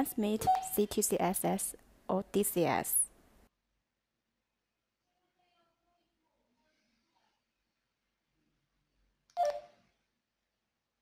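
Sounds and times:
handheld radio keypad beep: 0.4 - 0.8, 9.4 - 9.7
button click: 9.4 - 9.7.

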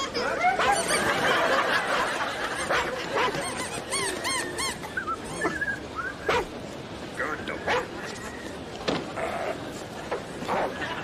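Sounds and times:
dog whimpering and yipping: 0.0 - 1.2, 2.6 - 6.5
background crowd noise: 0.0 - 11.0.

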